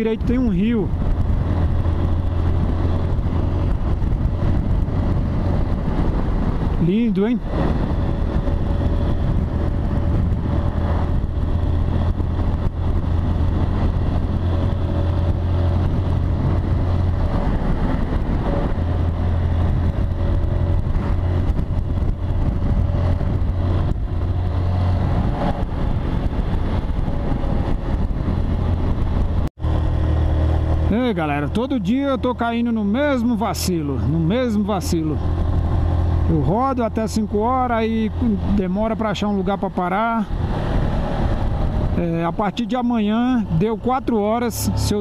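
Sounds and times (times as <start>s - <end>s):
motorcycle engine running: 0.0s - 45.0s
road noise: 0.0s - 45.0s.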